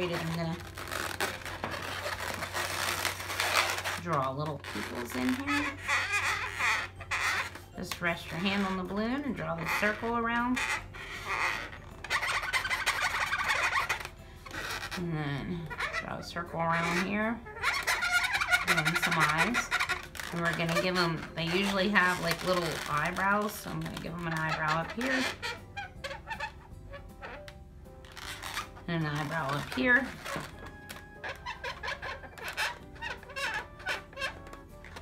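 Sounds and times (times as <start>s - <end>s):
marker squeaking on balloon: 0.0s - 35.0s.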